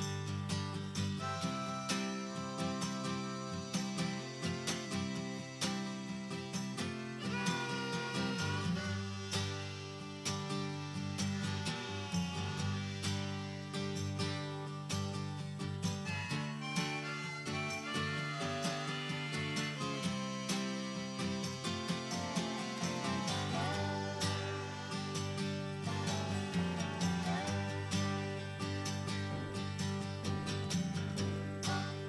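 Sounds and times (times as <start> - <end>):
plucked string music: 0.0 - 32.0.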